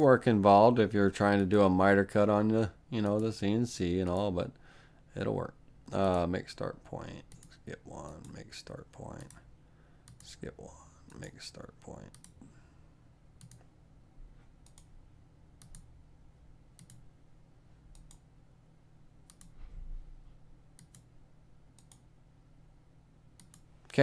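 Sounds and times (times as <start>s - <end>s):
faint low hum: 0.0s - 24.0s.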